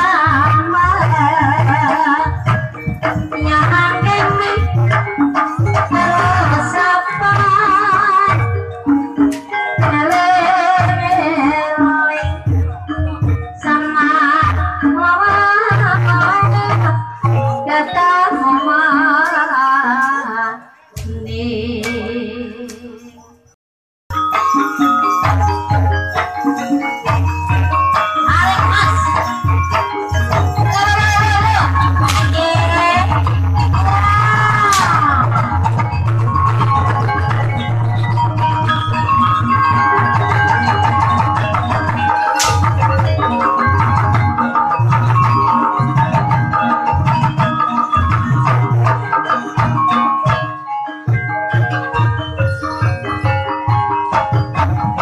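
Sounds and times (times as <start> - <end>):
gamelan music: 0.0 - 55.0
ringing metallophone tones: 0.0 - 55.0.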